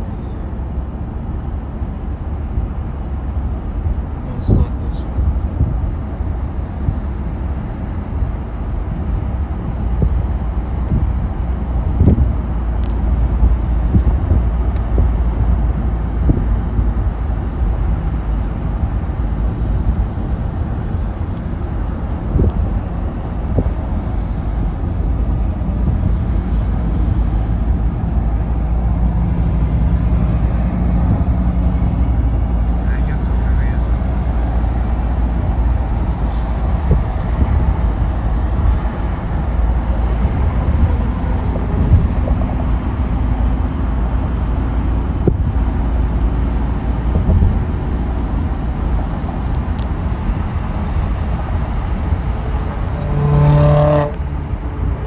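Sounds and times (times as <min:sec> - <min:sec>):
car cabin road noise: 0:00.0 - 0:55.0.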